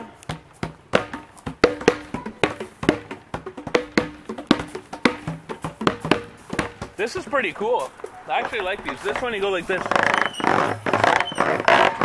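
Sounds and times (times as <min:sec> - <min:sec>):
pitched percussion knocks: 0:00.0 - 0:12.0.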